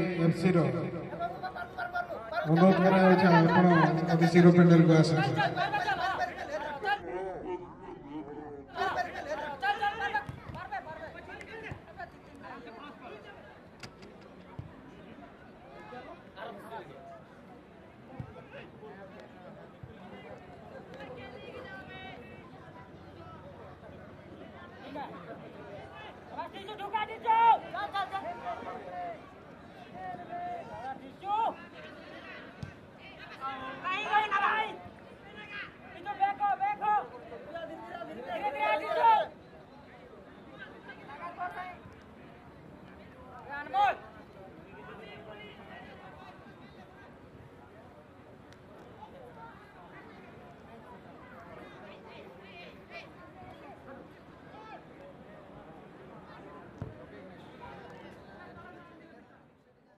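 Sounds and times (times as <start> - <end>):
people talking and calling out: 0.0 - 59.6.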